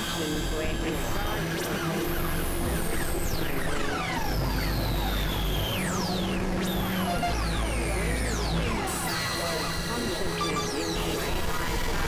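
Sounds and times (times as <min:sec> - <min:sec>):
experimental electronic music: 0:03.3 - 0:08.9.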